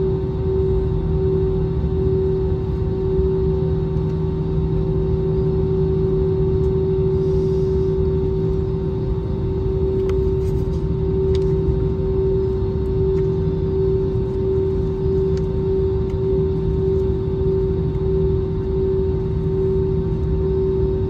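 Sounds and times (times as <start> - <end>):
jet engines idling in cabin: 0.0 - 21.0.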